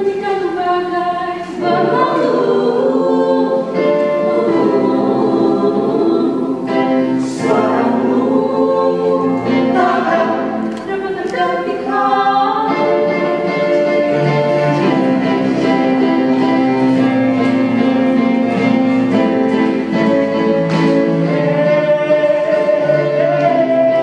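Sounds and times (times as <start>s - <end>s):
mixed vocal group singing in harmony: 0.4s - 24.0s.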